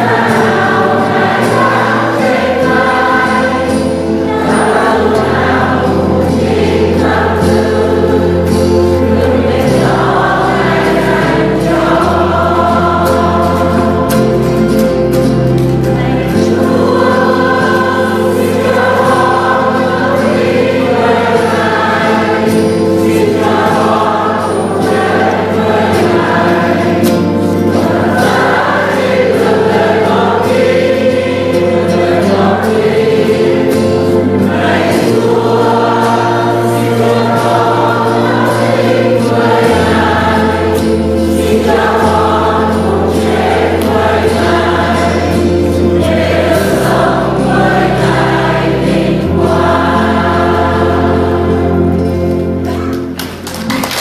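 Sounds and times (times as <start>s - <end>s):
held bass notes: 0.0s - 53.2s
congregation singing a hymn: 0.0s - 54.0s
guitar accompaniment: 0.0s - 54.0s.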